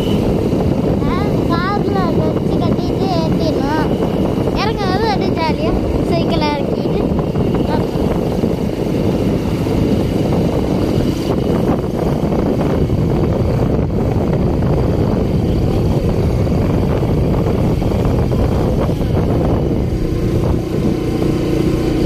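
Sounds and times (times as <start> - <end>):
motorcycle engine running: 0.0 - 22.0
wind rushing over microphone: 0.0 - 22.0.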